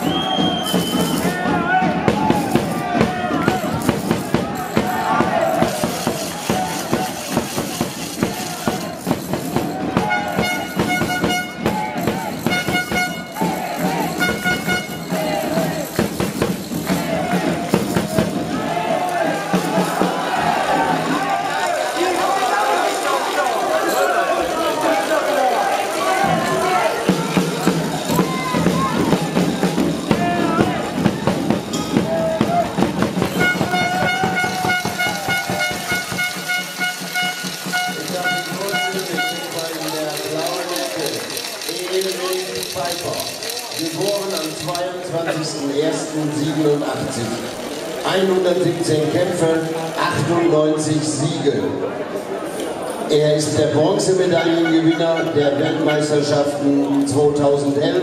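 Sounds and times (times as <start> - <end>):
crowd shouting and cheering: 0.0 - 58.0
horn blowing: 10.0 - 15.4, 33.2 - 40.0, 54.3 - 56.3.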